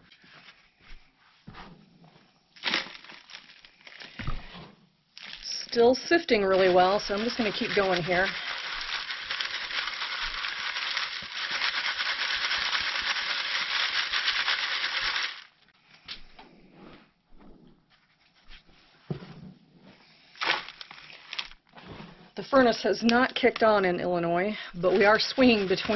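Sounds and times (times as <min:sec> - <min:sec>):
compost rustling: 0:05.2 - 0:12.8, 0:24.8 - 0:25.9
compost rattling in wire sieve: 0:05.2 - 0:15.5, 0:24.8 - 0:25.9.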